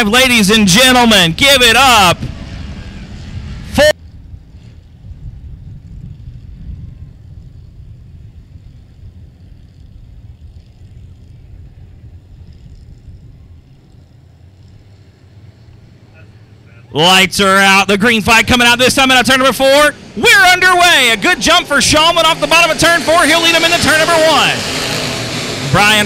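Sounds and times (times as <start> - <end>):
race car engines rumbling: 0.0 - 26.0.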